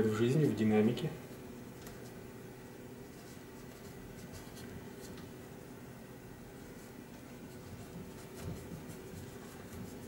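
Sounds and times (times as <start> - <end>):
paintbrush dabbing on cardboard: 6.6 - 10.0.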